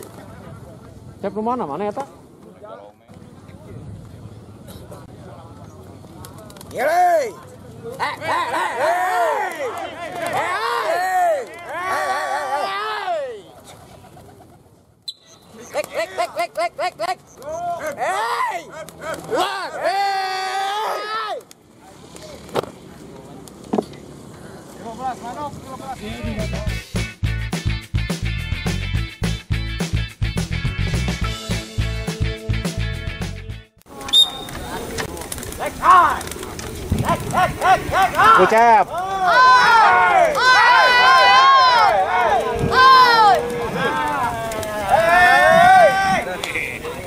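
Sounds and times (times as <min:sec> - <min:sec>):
men shouting hey calls: 0:08.0 - 0:13.5, 0:15.9 - 0:21.4, 0:37.2 - 0:47.0
person yelping calls to pigeons: 0:16.8 - 0:21.4.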